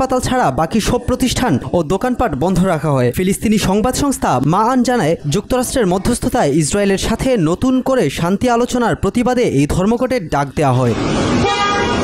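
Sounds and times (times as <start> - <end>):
street noise: 0.0 - 12.0
car horn: 11.0 - 12.0.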